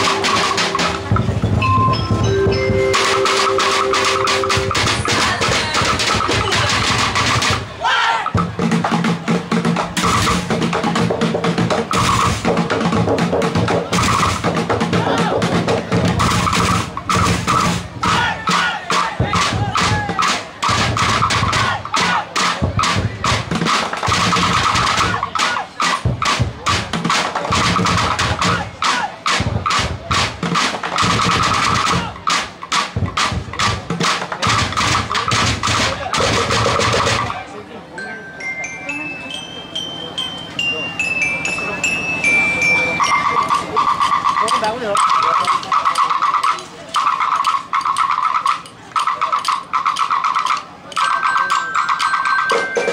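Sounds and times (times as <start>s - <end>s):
percussion ensemble fast rhythm: 0.0s - 37.6s, 38.4s - 52.9s.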